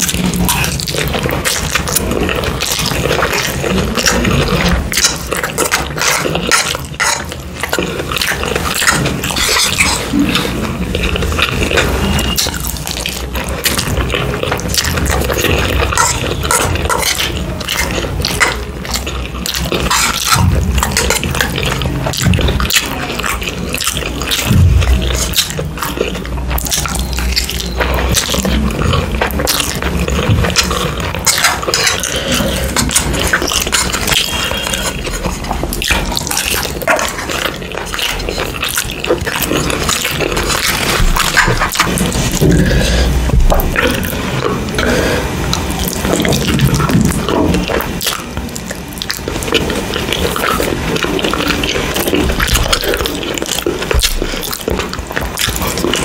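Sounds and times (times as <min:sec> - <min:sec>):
person chewing noodles: 0:00.0 - 0:56.0.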